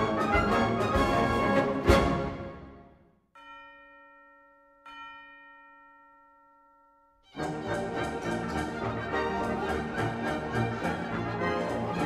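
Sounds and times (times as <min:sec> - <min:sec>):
bell-like chime ringing: 0:03.4 - 0:07.4.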